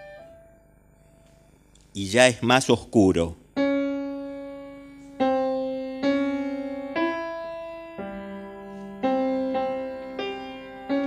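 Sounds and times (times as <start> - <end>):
grand piano played slowly: 0.0 - 1.2, 3.5 - 11.0.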